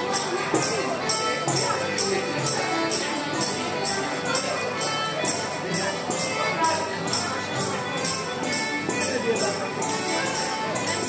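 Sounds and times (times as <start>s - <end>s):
accordions: 0.0s - 11.0s
acoustic guitar: 0.0s - 11.0s
tambourine jingles: 0.0s - 11.0s.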